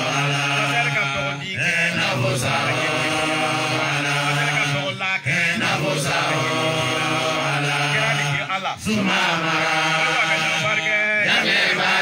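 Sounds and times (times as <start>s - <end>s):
men chanting into microphones: 0.0s - 12.0s.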